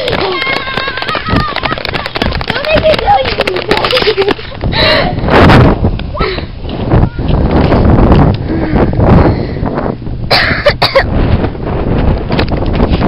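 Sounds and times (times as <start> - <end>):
wind rumbling on microphone: 0.0 - 13.0
harsh cough-like vocal burst: 10.3 - 11.1.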